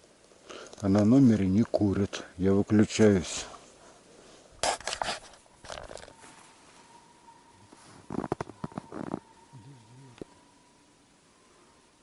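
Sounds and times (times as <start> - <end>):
rustling and crunching movement: 0.0 - 10.4.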